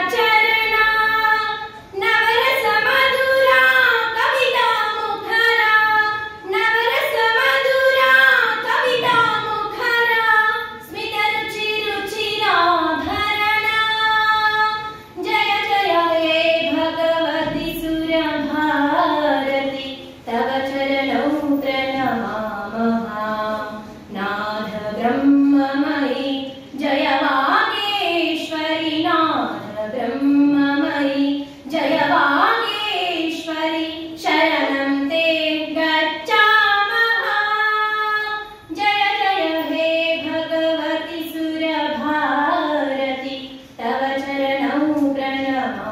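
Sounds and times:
woman singing unaccompanied: 0.0 - 45.9.

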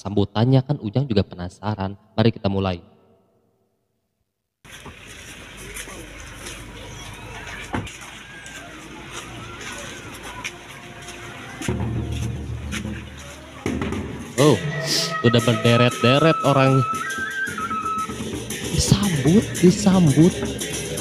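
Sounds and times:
vehicle low hum: 4.7 - 14.6
faint voices: 5.3 - 17.9
low-pitched music: 9.1 - 21.0.

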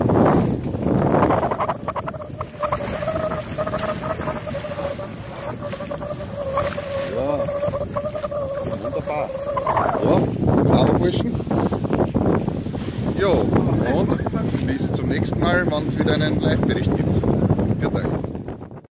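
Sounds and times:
wind rushing over microphone: 0.0 - 18.9
steady mid-pitched hum: 1.0 - 10.4
brief warbling sound: 1.3 - 10.2.

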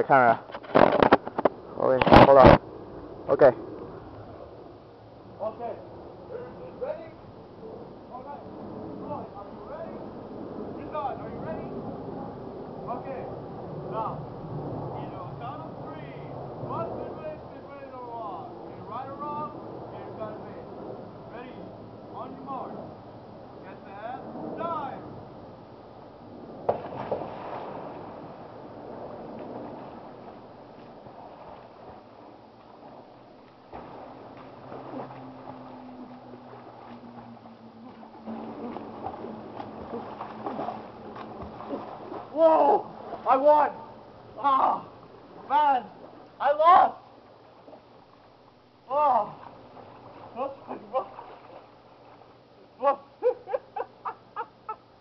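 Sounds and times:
water splashing in a pool: 26.6 - 52.6.

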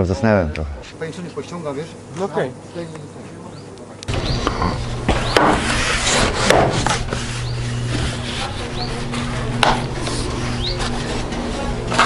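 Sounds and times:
broom scrubbing wooden boards: 4.6 - 12.0.

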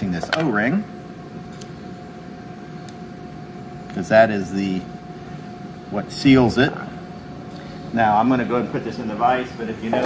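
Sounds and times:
background hum: 0.0 - 10.0.

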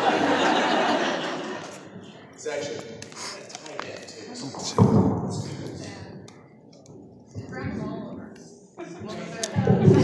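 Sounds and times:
indistinct talking in a hall: 0.0 - 10.0.

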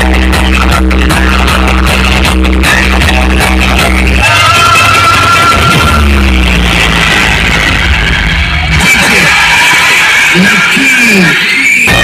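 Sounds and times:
loud music with heavy bass: 0.0 - 12.0.

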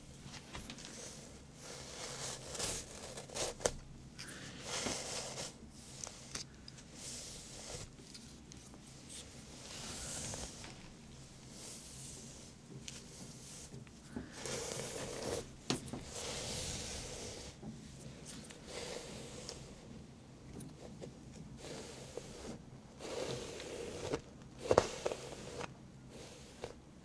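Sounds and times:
scraping and rustling strokes: 0.2 - 19.8, 20.8 - 26.8.

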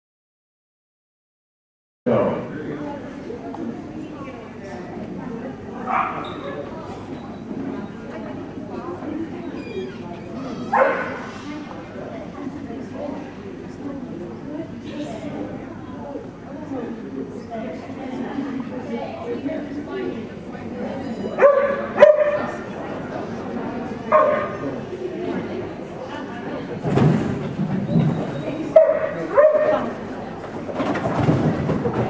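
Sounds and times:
dog barking loudly: 5.9 - 6.2, 10.7 - 11.2, 21.4 - 22.6, 28.8 - 29.9.

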